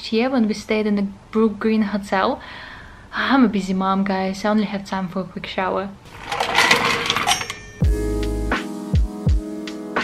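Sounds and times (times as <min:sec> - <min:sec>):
ice clinking in metal bucket: 0:06.1 - 0:07.9
background music with a beat: 0:07.8 - 0:10.0.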